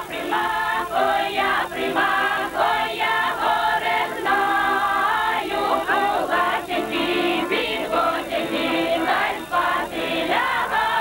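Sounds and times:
folk choir singing: 0.0s - 11.0s.

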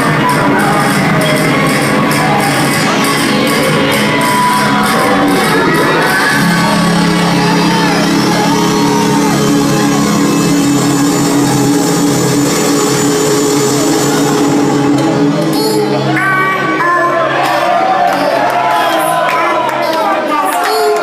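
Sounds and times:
crowd shouting: 0.0s - 21.0s
live hip-hop music: 0.0s - 21.0s.

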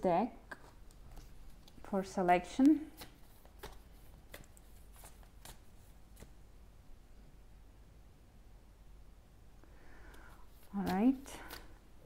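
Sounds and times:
cards being shuffled: 2.6s - 6.4s, 10.1s - 11.8s.

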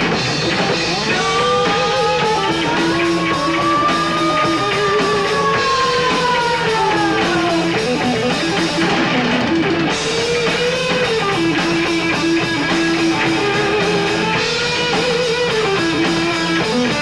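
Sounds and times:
bass guitar: 0.0s - 17.0s
drum kit: 0.0s - 17.0s
electric guitar melody: 0.0s - 17.0s.

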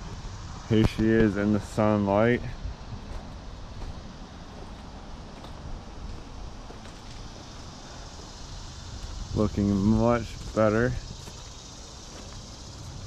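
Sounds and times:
low outdoor rumble: 0.0s - 13.0s.

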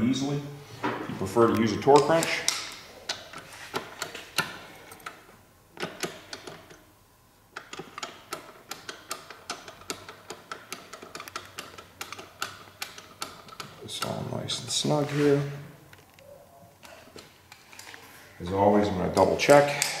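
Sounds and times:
socket ratchet clicking: 7.6s - 14.2s.

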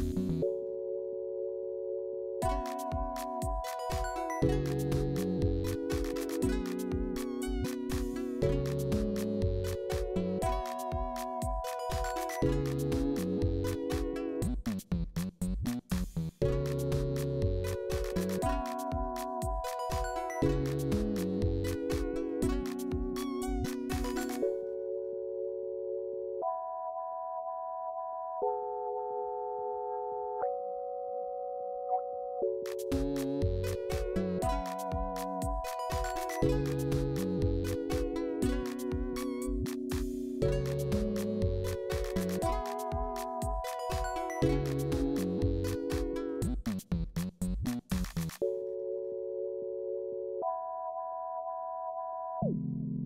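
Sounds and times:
synthesizer chord of pure tones: 48.6s - 53.0s.

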